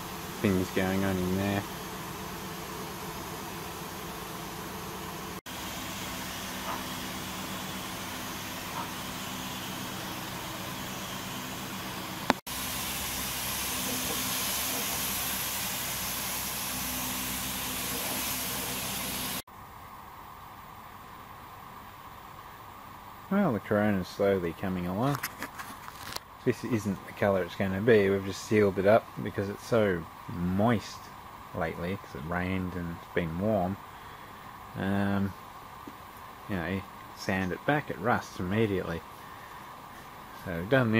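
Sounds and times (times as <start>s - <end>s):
machine hum with hiss: 0.0s - 40.9s.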